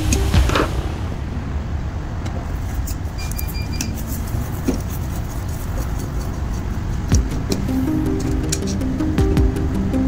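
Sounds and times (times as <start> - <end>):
low background rumble: 0.0 - 10.0
broken beeping tone: 3.2 - 4.0.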